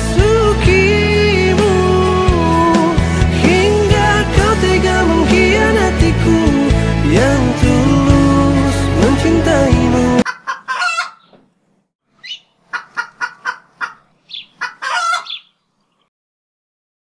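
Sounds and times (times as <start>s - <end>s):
background music: 0.0s - 10.3s
high clucking calls: 10.2s - 11.4s, 12.2s - 15.6s.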